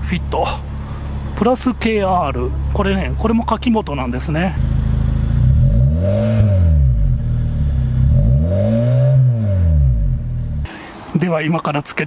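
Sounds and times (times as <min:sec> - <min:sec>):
car exhaust idling and revving: 0:00.0 - 0:10.8.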